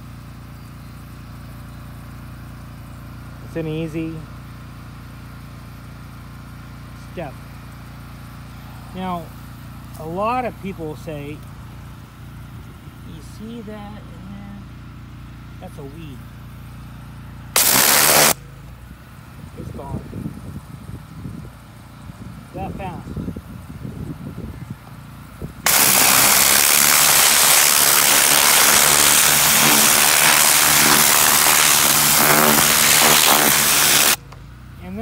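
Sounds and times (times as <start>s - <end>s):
small engine running: 0.0s - 23.0s, 24.8s - 35.0s.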